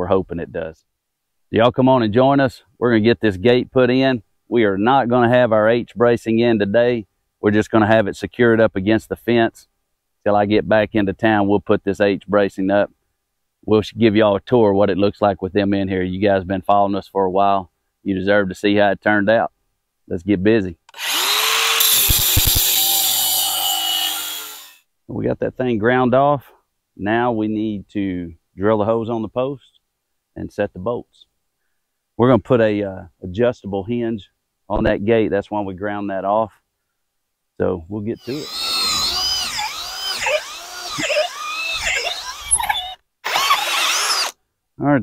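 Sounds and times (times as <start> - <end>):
angle grinder grinding metal: 20.9 - 24.8, 38.2 - 44.4
drill boring into wood: 20.9 - 24.8, 38.2 - 44.4.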